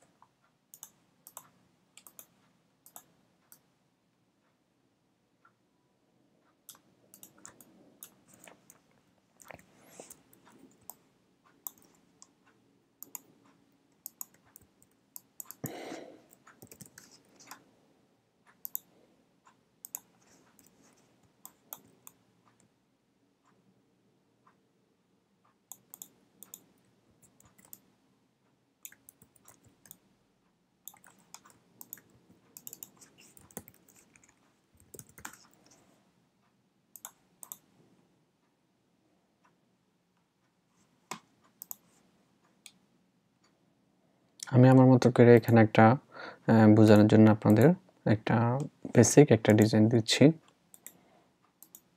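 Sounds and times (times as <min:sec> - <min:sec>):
mouse and keyboard clicks: 0:00.7 - 0:03.6, 0:11.6 - 0:12.4, 0:13.0 - 0:15.7, 0:16.3 - 0:17.6, 0:25.7 - 0:27.8, 0:30.9 - 0:35.8.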